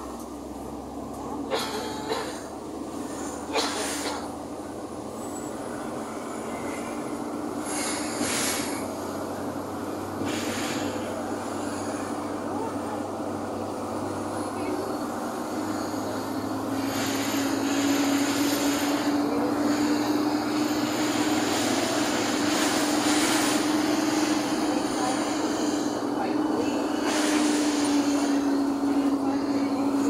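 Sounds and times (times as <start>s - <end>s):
engine and road noise inside car: 0.0s - 30.0s.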